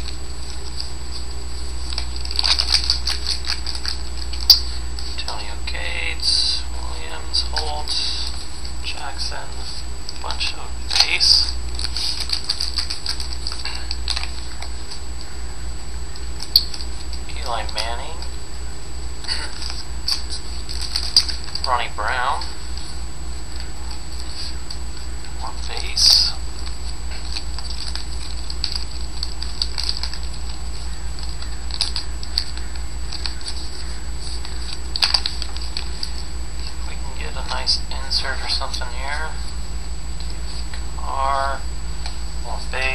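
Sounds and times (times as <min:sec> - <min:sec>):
steady low hum: 0:00.0 - 0:42.9
cards clicking: 0:01.8 - 0:05.4, 0:10.9 - 0:15.3, 0:16.1 - 0:18.3, 0:19.2 - 0:22.9, 0:23.6 - 0:36.8.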